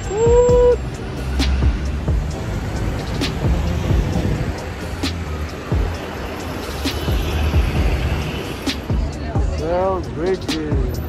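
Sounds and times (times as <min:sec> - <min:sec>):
music with deep bass line: 0:00.0 - 0:11.0.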